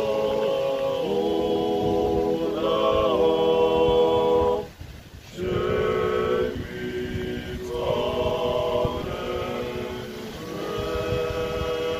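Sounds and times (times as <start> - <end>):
male choir singing unaccompanied: 0.0 - 11.9.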